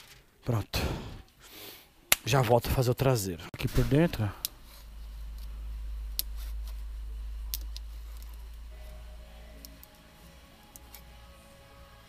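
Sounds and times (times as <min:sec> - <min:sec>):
faint background music: 0:01.9 - 0:12.0
low steady rumble: 0:03.6 - 0:12.0.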